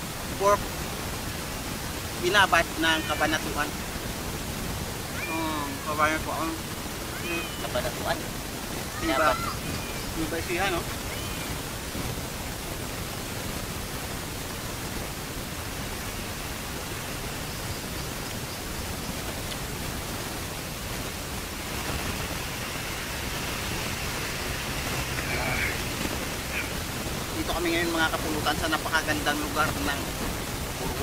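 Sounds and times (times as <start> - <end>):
faint high hiss: 0.0 - 31.0
steady rushing noise: 0.0 - 31.0.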